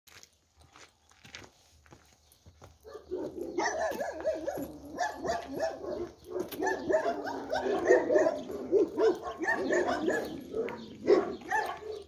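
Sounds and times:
footsteps on gravel: 0:00.1 - 0:12.0.

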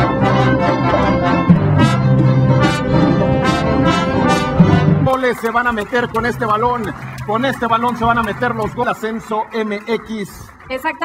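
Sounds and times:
brass: 0:00.0 - 0:09.3
orchestra playing loudly: 0:00.0 - 0:09.6.

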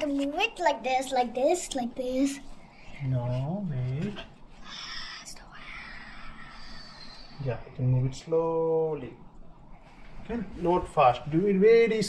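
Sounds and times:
person whispering: 0:04.6 - 0:07.8.

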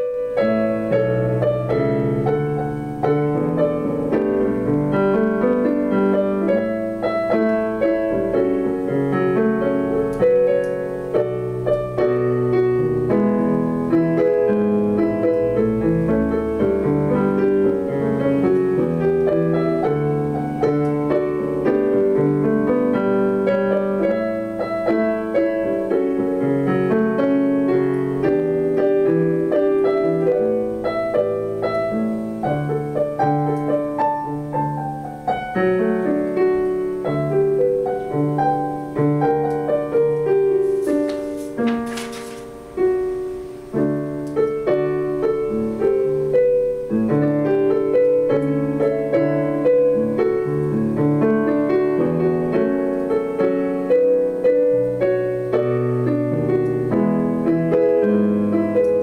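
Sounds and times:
digital piano playing chords and melody: 0:00.0 - 0:59.0.

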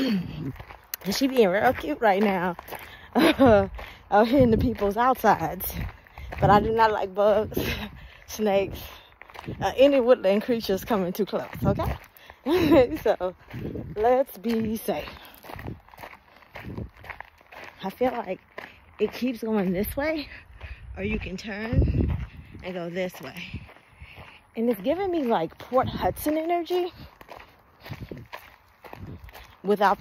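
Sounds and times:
soft footsteps on trail: 0:00.0 - 0:30.0.

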